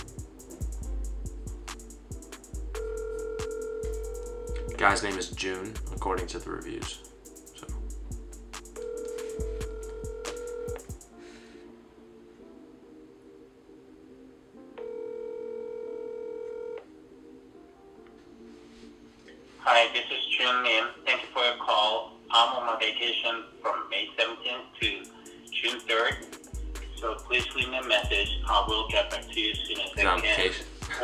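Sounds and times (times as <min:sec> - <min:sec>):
background music with steady beat: 0:00.0 - 0:15.4, 0:16.8 - 0:31.0
phone ringback tone: 0:02.7 - 0:04.8, 0:08.8 - 0:10.9, 0:14.8 - 0:16.9.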